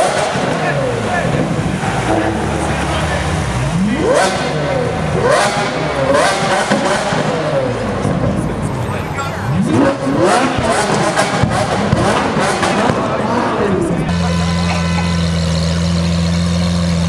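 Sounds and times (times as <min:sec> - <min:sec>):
crowd noise: 0:00.0 - 0:17.0
sports car engines revving: 0:00.0 - 0:17.0
street noise: 0:00.0 - 0:17.0.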